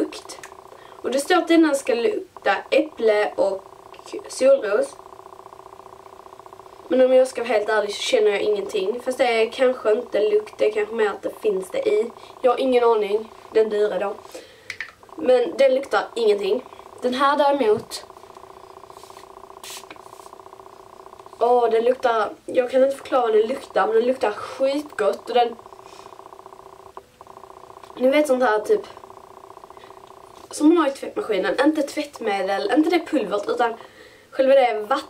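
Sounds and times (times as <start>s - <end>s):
buzzing hum with flutter: 0.0s - 35.0s.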